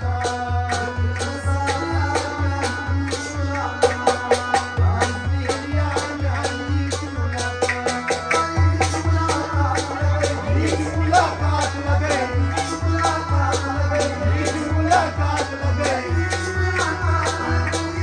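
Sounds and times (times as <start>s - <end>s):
harmonium playing held notes: 0.0s - 18.0s
man singing: 0.0s - 18.0s.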